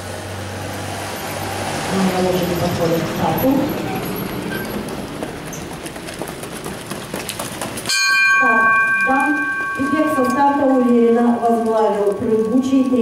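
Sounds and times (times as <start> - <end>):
open-air noise: 0.0 - 13.0
ringing tone over loudspeakers: 7.9 - 13.0
announcer speaking: 8.4 - 13.0.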